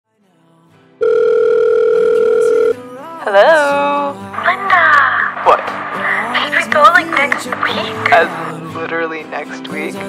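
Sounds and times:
telephone ringing tone: 0:01.0 - 0:02.8.

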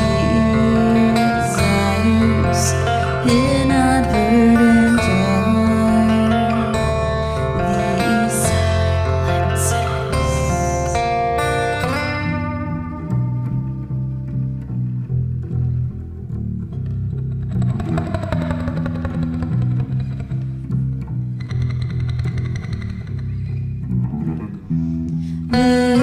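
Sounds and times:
woman singing: 0:00.0 - 0:11.5, 0:25.5 - 0:26.0
acoustic guitar: 0:00.0 - 0:26.0
electric bass: 0:00.0 - 0:26.0.

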